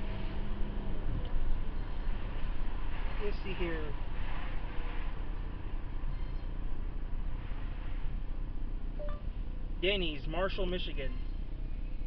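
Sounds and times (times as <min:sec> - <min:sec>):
road and engine rumble in car: 0:00.0 - 0:12.0
faint tone: 0:09.0 - 0:09.3.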